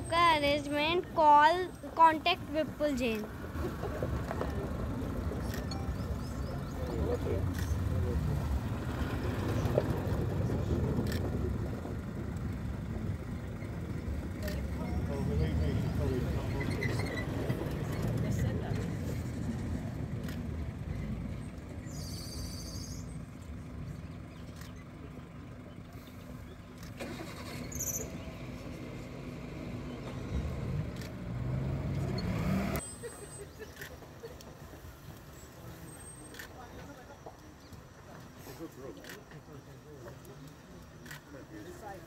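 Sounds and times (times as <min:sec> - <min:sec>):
vehicle engine running: 0:00.0 - 0:42.0.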